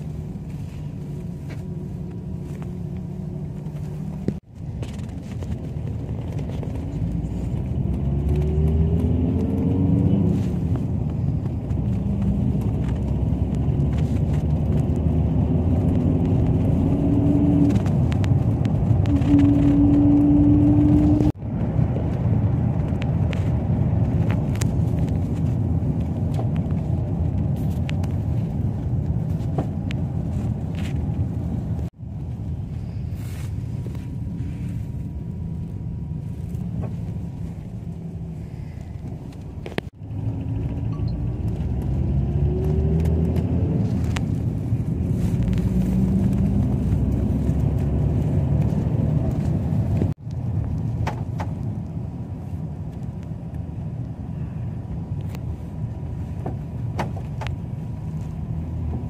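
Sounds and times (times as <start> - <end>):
engine and road rumble: 0.0 - 59.0.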